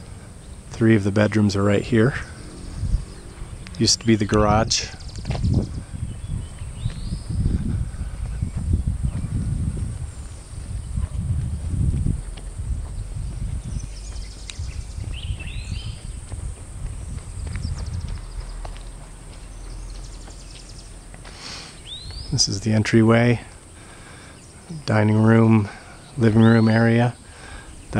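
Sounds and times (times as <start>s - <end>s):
footsteps on a driveway: 0.0s - 27.9s
handheld camera rumble: 0.0s - 27.9s.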